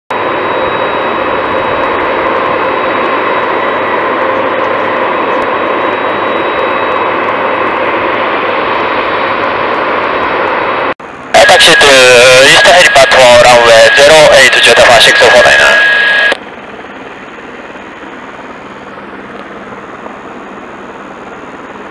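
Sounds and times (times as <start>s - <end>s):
helicopter turbine whine: 0.1s - 21.9s.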